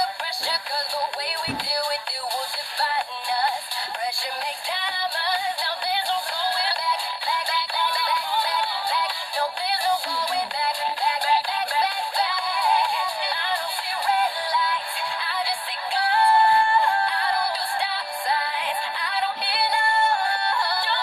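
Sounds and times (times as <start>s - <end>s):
girl singing unaccompanied: 0.0s - 21.0s.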